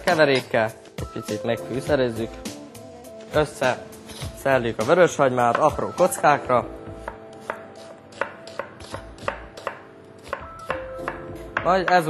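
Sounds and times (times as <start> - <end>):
knife chopping on cutting board: 5.5 - 12.0.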